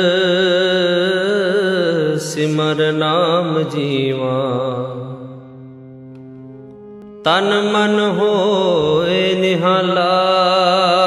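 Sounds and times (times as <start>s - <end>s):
person singing: 0.0s - 11.0s
harmonium holding a chord: 2.8s - 10.9s.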